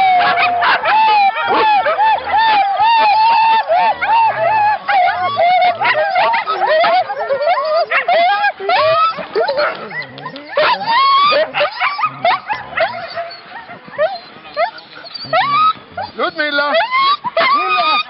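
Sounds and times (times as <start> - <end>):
dogs yelping and howling: 0.0 - 18.0.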